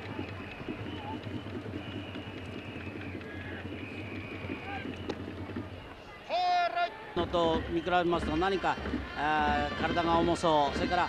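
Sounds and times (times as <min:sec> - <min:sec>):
ballpark crowd noise: 0:00.0 - 0:11.0.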